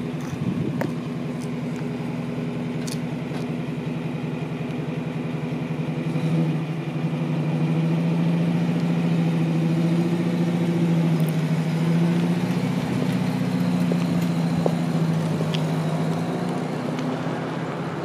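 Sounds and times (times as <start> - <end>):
car engine idling: 0.0 - 18.0.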